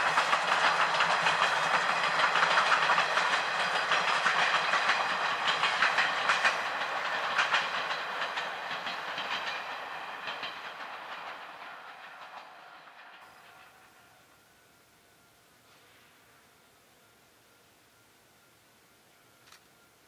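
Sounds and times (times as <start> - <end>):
train wheels clacking over rail joints: 0.0 - 14.4.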